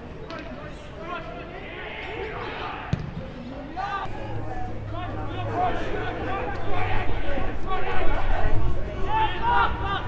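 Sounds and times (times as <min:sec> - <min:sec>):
crowd voices: 0:00.0 - 0:10.0
players shouting: 0:01.0 - 0:10.0
football being kicked: 0:02.9 - 0:03.2.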